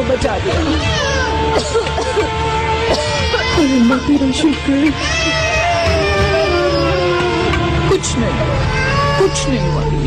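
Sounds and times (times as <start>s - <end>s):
infant crying: 0.6s - 7.8s, 8.5s - 10.0s.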